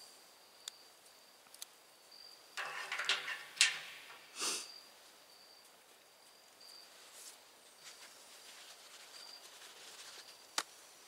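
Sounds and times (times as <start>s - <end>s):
high insect tone: 0.0s - 10.6s.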